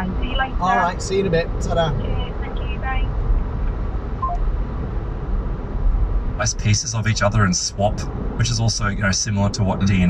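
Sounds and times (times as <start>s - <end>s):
car road and engine rumble: 0.0s - 10.0s
faint short beep: 4.2s - 4.4s.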